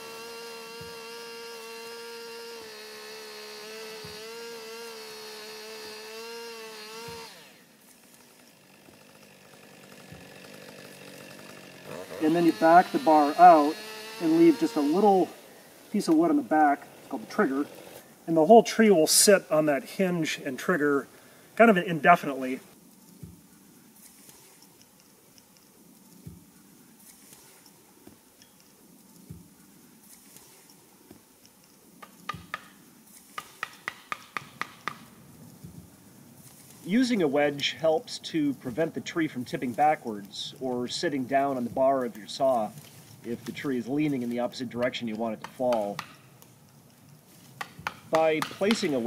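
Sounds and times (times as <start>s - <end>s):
sharp taps on felling wedge: 0.7s - 2.3s, 3.6s - 5.3s, 6.2s - 7.4s, 32.0s - 35.8s, 44.7s - 49.0s
axe tapping a wedge: 4.0s - 4.3s, 32.0s - 35.1s, 44.8s - 46.2s, 47.6s - 49.0s.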